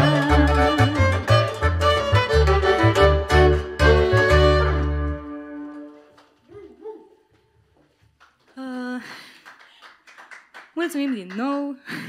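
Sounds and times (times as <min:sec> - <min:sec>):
double bass: 0:00.0 - 0:05.8
accordion: 0:00.0 - 0:06.0
violin: 0:00.0 - 0:06.1.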